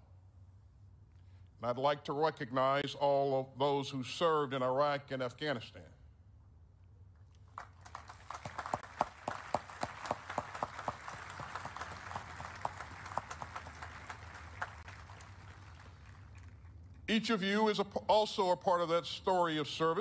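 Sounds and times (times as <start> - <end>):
low steady hum: 0.0 - 20.0
outdoor audience applauding: 7.5 - 16.8.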